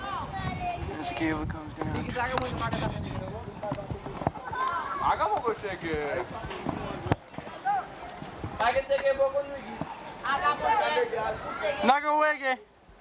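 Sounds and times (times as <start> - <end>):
voices talking: 0.0 - 12.7.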